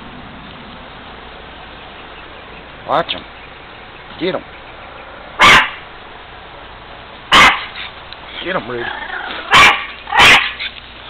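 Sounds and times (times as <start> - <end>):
small dog barking: 5.4 - 5.8, 7.3 - 7.9, 9.3 - 10.7.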